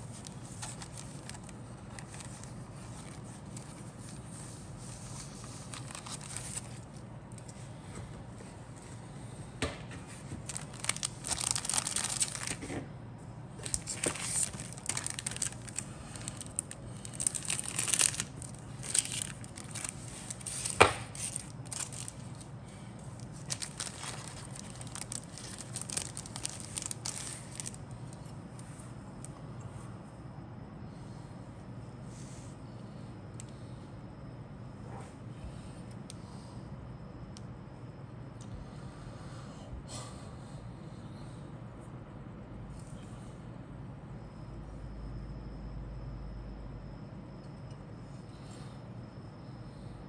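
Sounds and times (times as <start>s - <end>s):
plastic bag crinkling and tearing: 0.1s - 3.8s, 5.5s - 6.9s, 10.4s - 12.7s, 13.6s - 22.5s, 23.2s - 27.8s
handling rustles: 0.1s - 7.6s, 10.0s - 12.8s, 13.6s - 27.8s.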